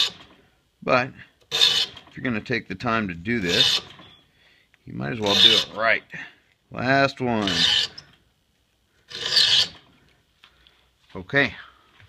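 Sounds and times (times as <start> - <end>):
file rasping on saw teeth: 1.5 - 2.0, 3.5 - 4.0, 5.2 - 5.8, 7.4 - 8.1, 9.1 - 9.8.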